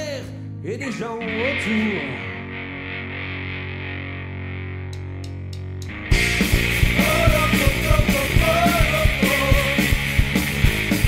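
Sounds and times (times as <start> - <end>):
distorted electric guitar chord: 1.2 - 11.0
rock band playing: 1.2 - 11.0.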